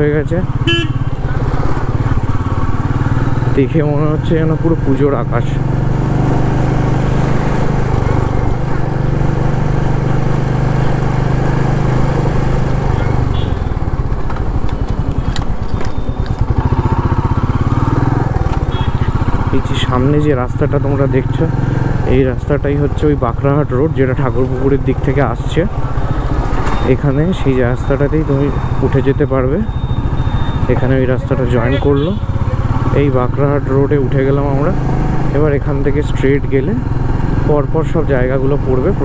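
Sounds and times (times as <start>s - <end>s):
motorcycle engine running: 0.0s - 39.0s.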